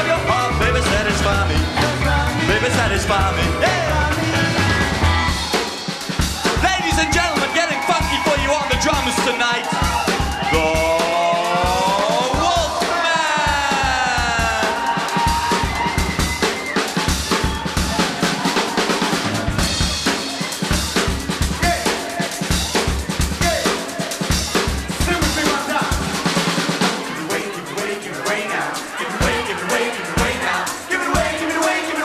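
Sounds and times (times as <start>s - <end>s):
rock drum solo: 0.0s - 32.0s.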